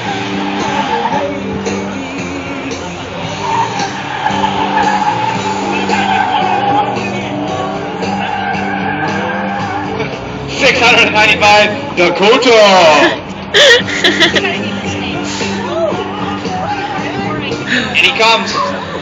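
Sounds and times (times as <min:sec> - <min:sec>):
car tires squealing: 0:00.0 - 0:01.8, 0:02.5 - 0:13.2
music with sustained stepping notes: 0:00.0 - 0:19.0.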